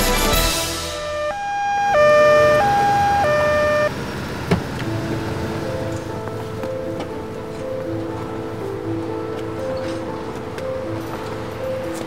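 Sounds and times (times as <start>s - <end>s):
two-tone police siren: 0.7s - 4.0s.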